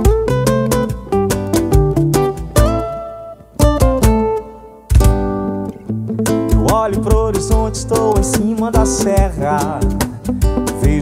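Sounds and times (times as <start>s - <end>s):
acoustic guitars and cajon: 0.0s - 11.0s
person singing: 6.5s - 11.0s.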